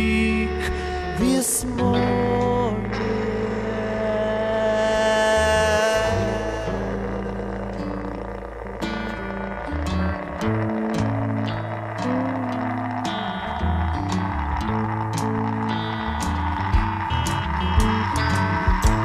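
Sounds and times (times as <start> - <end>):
sustained guitar tones: 0.0 - 19.0
walking electric bass line: 0.0 - 19.0.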